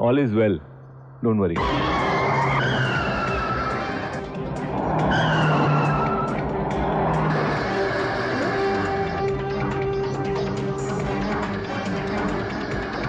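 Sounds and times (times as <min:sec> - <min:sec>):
background music: 0:00.0 - 0:13.0
car tyres screeching: 0:01.6 - 0:13.0
cars driven hard: 0:01.6 - 0:13.0.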